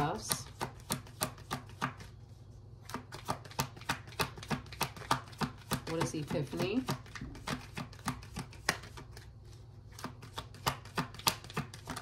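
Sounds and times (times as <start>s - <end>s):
cards being shuffled: 2.8s - 12.0s.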